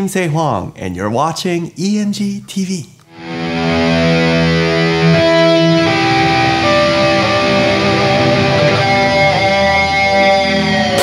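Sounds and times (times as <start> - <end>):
distorted electric guitar chord: 3.2 - 11.0.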